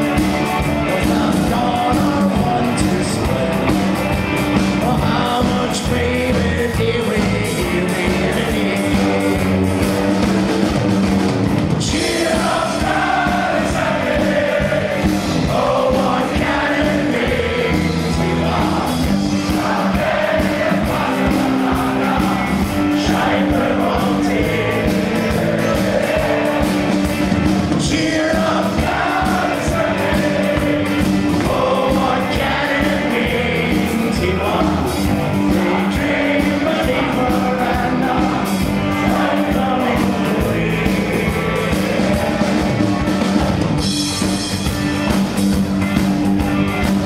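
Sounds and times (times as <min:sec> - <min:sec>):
live rock band: 0:00.0 - 0:47.0
many voices singing held notes: 0:11.8 - 0:43.0.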